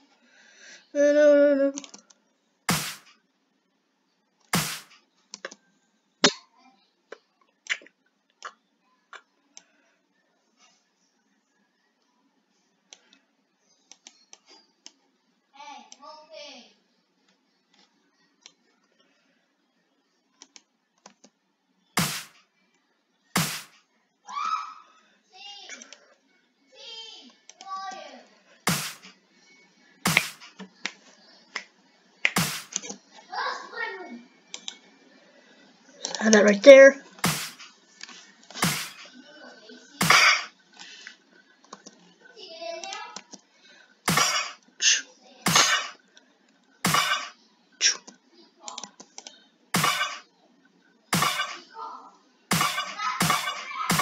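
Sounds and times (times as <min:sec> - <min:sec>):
soft mouse clicks: 0:01.8 - 0:02.1, 0:05.3 - 0:05.6, 0:13.8 - 0:15.0, 0:20.4 - 0:21.4, 0:34.5 - 0:34.8, 0:41.6 - 0:42.0, 0:47.9 - 0:49.4
sharp clap hits: 0:02.7 - 0:03.1, 0:04.6 - 0:04.9, 0:22.0 - 0:22.3, 0:23.4 - 0:23.7, 0:28.7 - 0:29.1, 0:30.1 - 0:30.5, 0:31.6 - 0:32.8, 0:37.2 - 0:37.6, 0:38.6 - 0:39.0, 0:40.0 - 0:40.4, 0:44.1 - 0:44.5, 0:45.5 - 0:45.9, 0:46.9 - 0:47.3, 0:49.8 - 0:50.2, 0:51.2 - 0:51.6, 0:52.5 - 0:54.0
sharp hand claps: 0:31.6 - 0:32.7.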